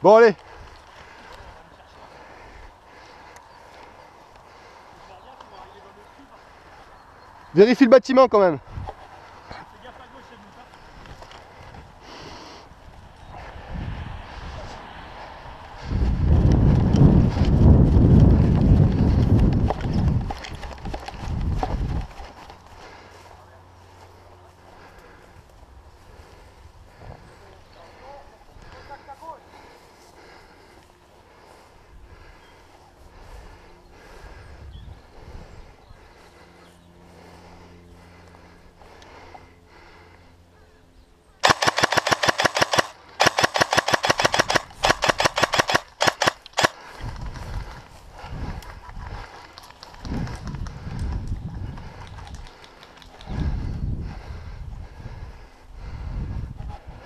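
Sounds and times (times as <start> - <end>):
airsoft rifle full-auto bursts: 41.4 - 46.8.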